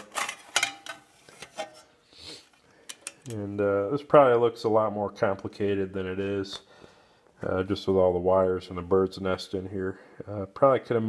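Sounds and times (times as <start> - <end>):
metal lid clanking and scraping: 0.0 - 2.0.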